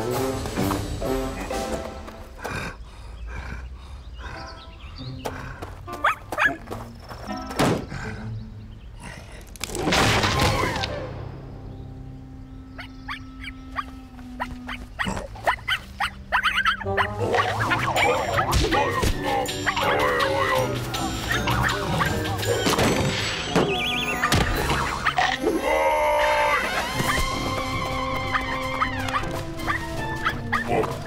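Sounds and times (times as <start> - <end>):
cartoon background music: 0.0 - 2.4, 9.8 - 31.0.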